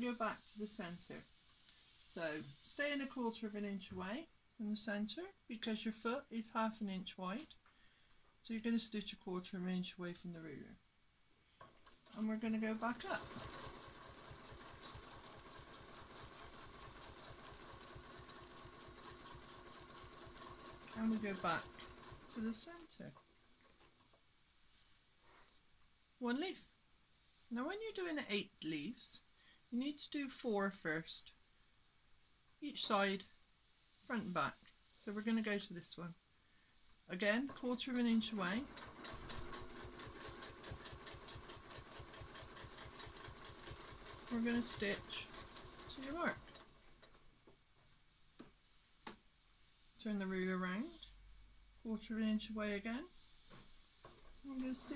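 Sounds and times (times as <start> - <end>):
sewing machine stitching: 12.0 - 23.8, 37.3 - 47.3, 54.0 - 54.9.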